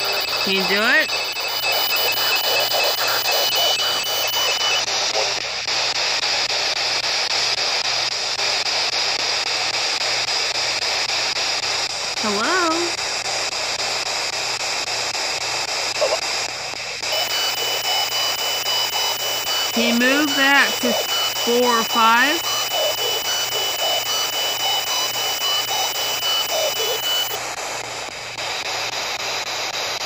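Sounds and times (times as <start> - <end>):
radio static: 0.0 - 4.8, 17.1 - 27.4
snatches of broadcast voices: 0.0 - 4.8, 17.1 - 27.4.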